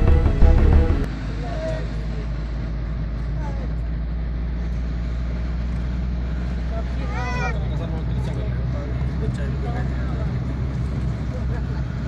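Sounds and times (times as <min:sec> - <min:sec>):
car engine and tyre drone: 0:00.0 - 0:12.0.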